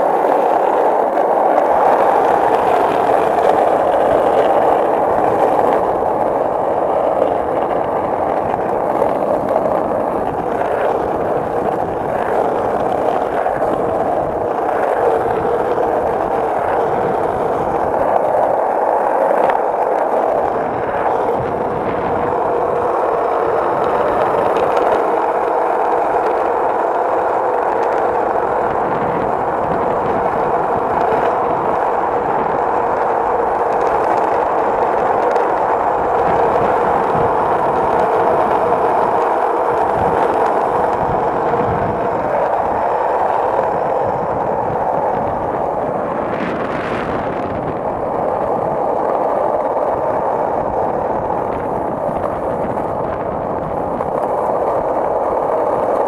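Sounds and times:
skateboard wheels rolling on asphalt: 0:00.0 - 0:56.0.

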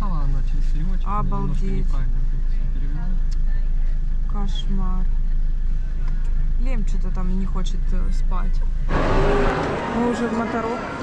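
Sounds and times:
car engine rumble: 0:00.0 - 0:11.0
road noise inside car: 0:00.0 - 0:11.0.

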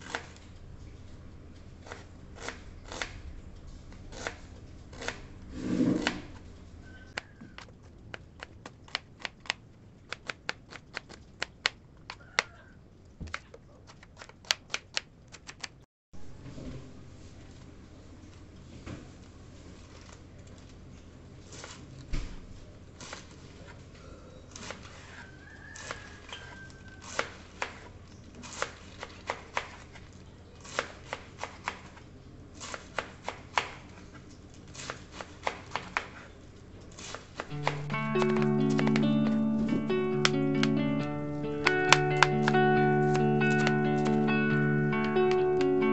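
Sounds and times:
knife slicing cabbage: 0:01.8 - 0:03.2, 0:04.0 - 0:06.4, 0:24.5 - 0:30.0, 0:30.6 - 0:34.0, 0:34.7 - 0:39.9, 0:40.6 - 0:45.9
knife chopping on plastic board: 0:05.9 - 0:06.4, 0:30.6 - 0:32.0, 0:32.6 - 0:33.9, 0:34.7 - 0:36.3, 0:37.0 - 0:40.8, 0:41.6 - 0:44.2
knife tapping plastic cutting board: 0:37.4 - 0:40.8, 0:41.6 - 0:44.2, 0:44.9 - 0:45.8.

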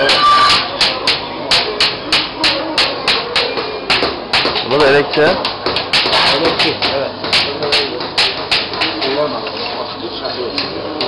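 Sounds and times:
hammer striking metal: 0:00.0 - 0:09.2.

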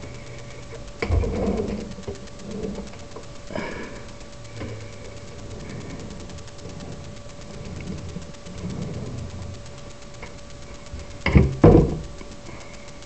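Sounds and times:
faint high hum: 0:00.0 - 0:13.0.

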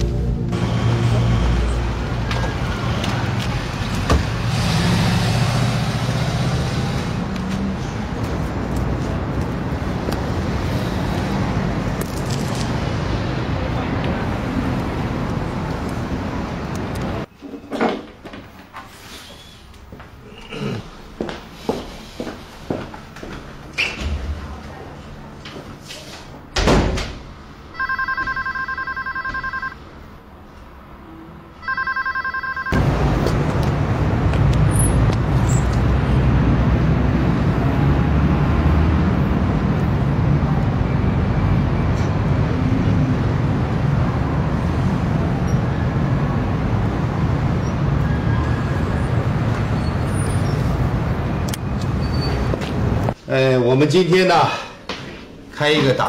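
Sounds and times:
city street traffic: 0:00.0 - 0:56.0
door shutting with a thump: 0:26.6 - 0:27.2
desk telephone electronic ring: 0:27.8 - 0:29.8, 0:31.6 - 0:32.8.

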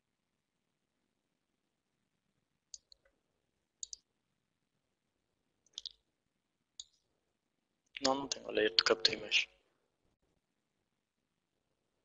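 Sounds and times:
computer mouse clicking: 0:02.7 - 0:03.1, 0:03.8 - 0:04.1, 0:05.7 - 0:06.0.

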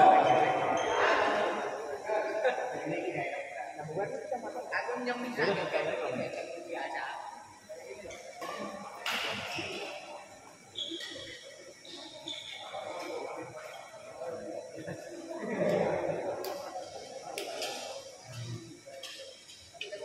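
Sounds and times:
spectators talking in echoing hall: 0:00.0 - 0:20.0.

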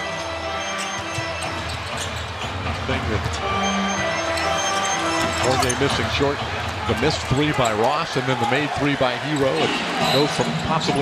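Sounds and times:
arena music: 0:00.0 - 0:11.0
crowd noise: 0:00.0 - 0:11.0.

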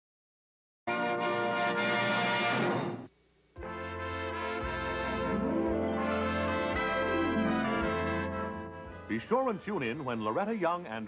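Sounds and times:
held musical chord: 0:03.6 - 0:09.9.

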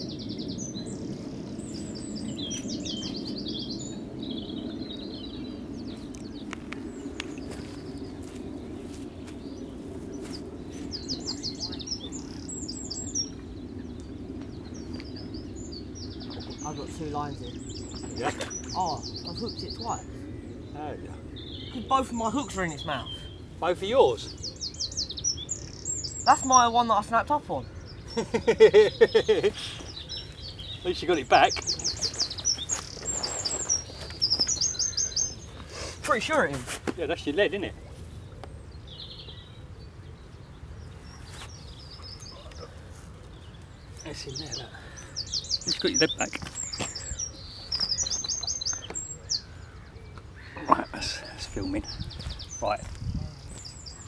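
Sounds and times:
small bird chirping: 0:00.0 - 0:27.0, 0:27.6 - 0:37.6, 0:38.4 - 0:54.0
low background rush: 0:00.0 - 0:54.0
songbird singing: 0:00.0 - 0:54.0.

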